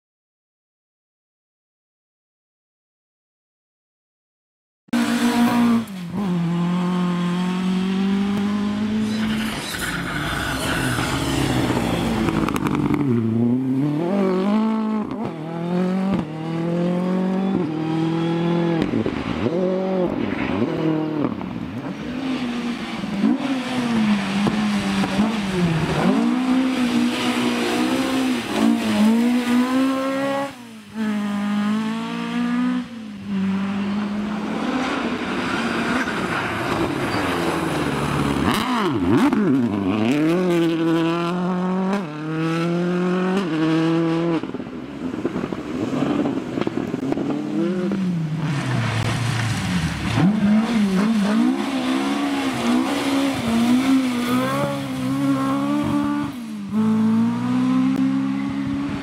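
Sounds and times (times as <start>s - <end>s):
rally car engines revving: 5.0s - 59.0s.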